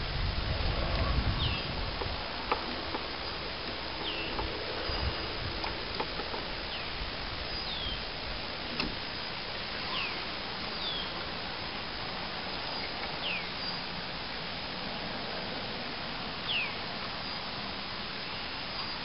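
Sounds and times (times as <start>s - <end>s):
outdoor hiss: 0.0s - 19.0s
bird whistled calls: 7.5s - 8.0s, 9.8s - 10.2s, 16.5s - 17.4s.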